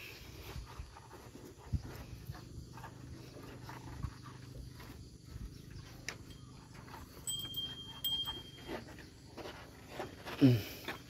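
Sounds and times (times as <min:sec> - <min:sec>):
cow snuffling and breathing: 0:00.0 - 0:11.0.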